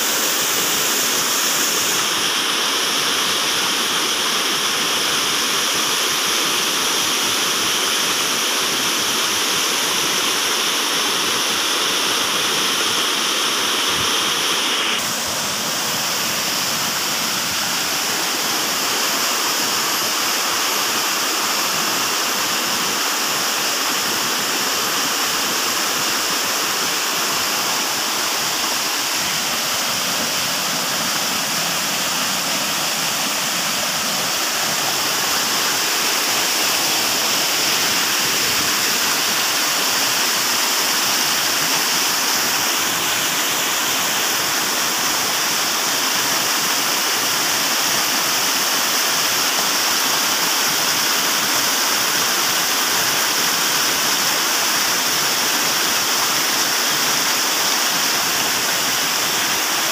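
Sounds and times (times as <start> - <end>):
waterfall pouring over rocks: 0.0 - 59.9.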